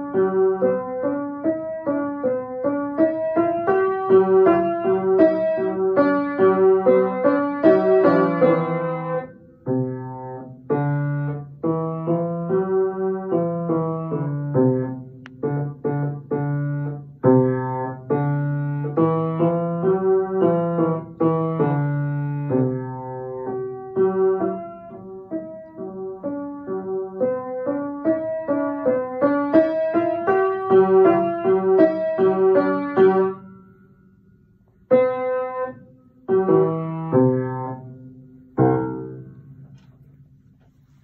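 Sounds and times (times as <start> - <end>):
upright piano playing: 0.0 - 33.9, 34.8 - 40.5.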